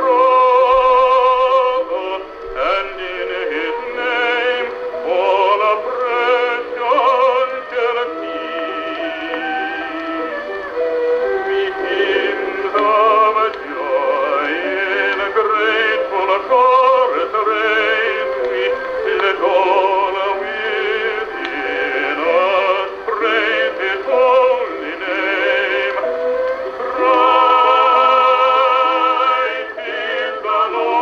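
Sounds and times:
baritone singing with vibrato: 0.0s - 31.0s
orchestra accompaniment: 0.0s - 31.0s.

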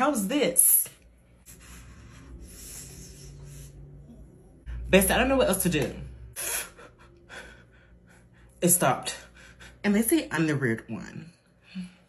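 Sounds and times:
faint breath: 1.4s - 4.1s.

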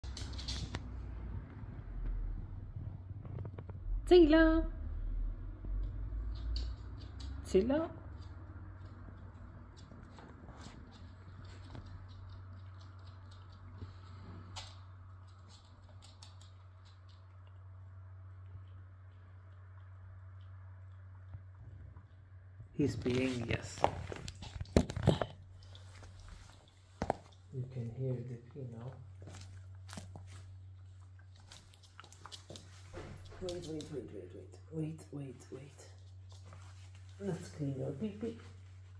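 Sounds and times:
steady low hum: 0.0s - 38.9s
dog claws clicking on wooden floor: 5.8s - 17.6s, 31.4s - 34.2s.

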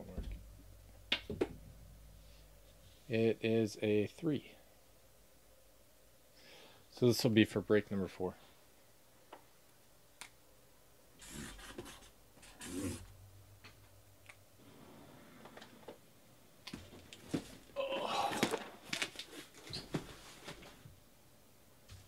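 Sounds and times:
cardboard rubbing and scraping: 11.2s - 13.0s.

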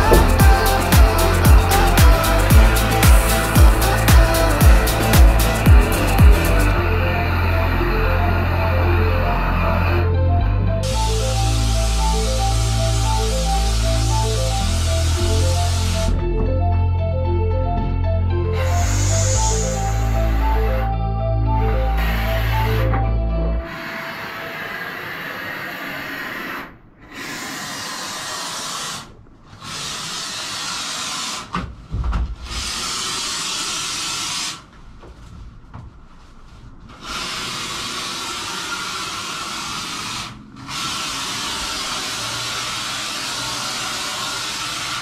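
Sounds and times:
spray foam gun hissing: 0.0s - 6.8s, 10.9s - 16.1s, 18.7s - 20.4s, 23.8s - 31.5s, 32.5s - 34.6s, 37.0s - 45.0s.

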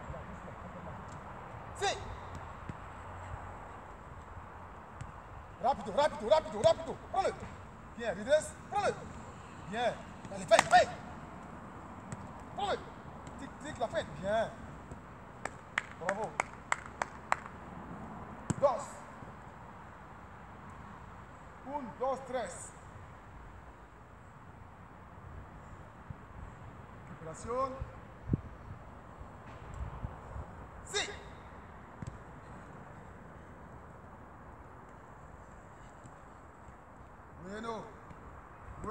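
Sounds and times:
faint outdoor background: 0.0s - 38.9s
foot tapping football: 5.0s - 7.6s, 12.1s - 14.2s, 32.0s - 32.3s.

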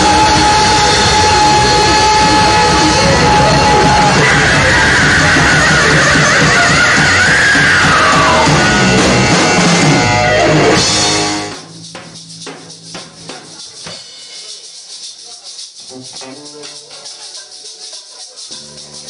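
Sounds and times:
loud live rock band: 0.0s - 11.8s
light percussion strikes: 11.6s - 19.0s.

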